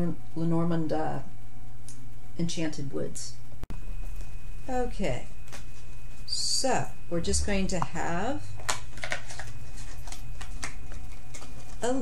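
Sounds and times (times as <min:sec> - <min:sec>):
steady low hum: 0:00.0 - 0:12.0
cards being shuffled: 0:08.6 - 0:11.9.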